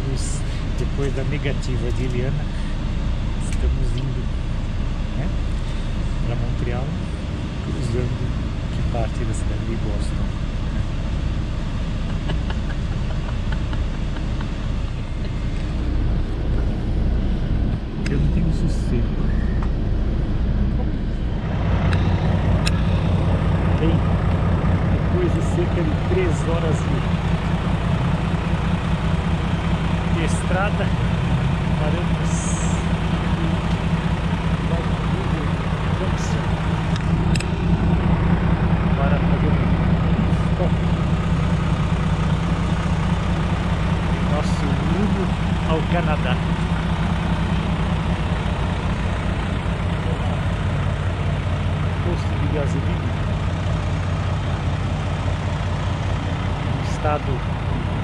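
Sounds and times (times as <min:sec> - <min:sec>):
bus engine idling: 0:00.0 - 0:58.0.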